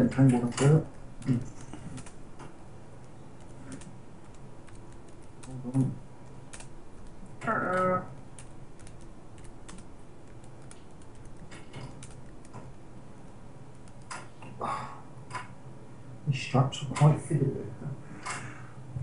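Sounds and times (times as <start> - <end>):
computer parts clicking and tapping: 0.0 - 14.5, 15.3 - 15.6.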